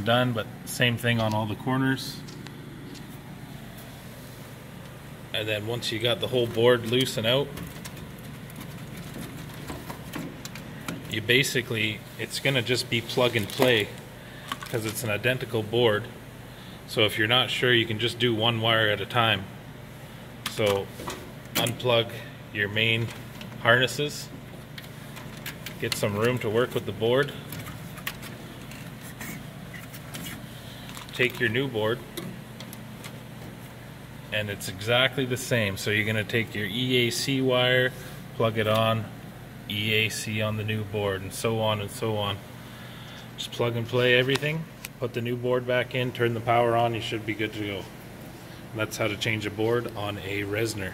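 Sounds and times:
low steady hum: 0:00.0 - 0:50.9
faint handling noise: 0:05.7 - 0:15.3, 0:24.4 - 0:33.9.

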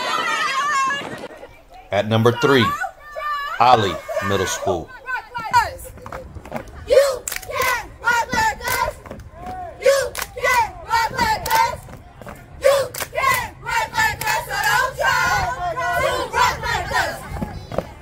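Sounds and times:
girls shouting a cheer chant: 0:02.3 - 0:06.2, 0:06.8 - 0:11.9, 0:12.6 - 0:18.0.

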